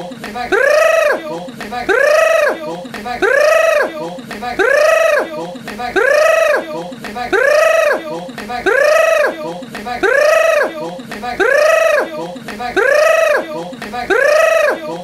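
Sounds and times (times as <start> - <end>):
person making grrr cry: 0.1 - 15.0.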